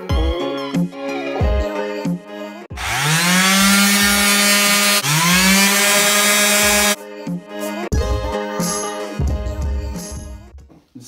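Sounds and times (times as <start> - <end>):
orbital sander sanding floorboards: 2.8 - 7.0.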